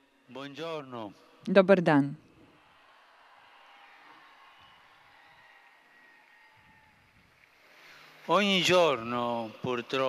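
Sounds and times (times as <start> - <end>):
faint outdoor crowd noise: 0.0 - 10.0.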